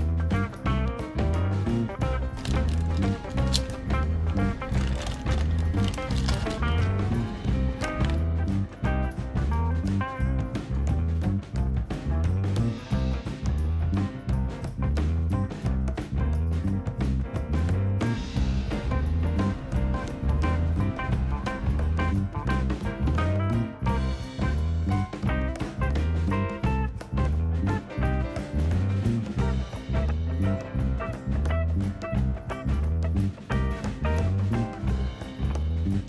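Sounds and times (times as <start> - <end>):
background music with steady beat: 0.0 - 36.0
bouncing bass line: 0.0 - 36.0.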